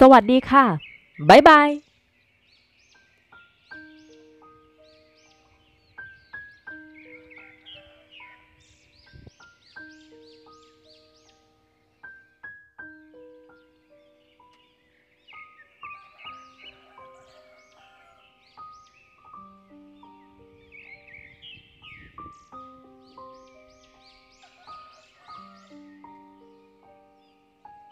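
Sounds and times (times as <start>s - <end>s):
slow keyboard melody: 2.7s - 27.9s.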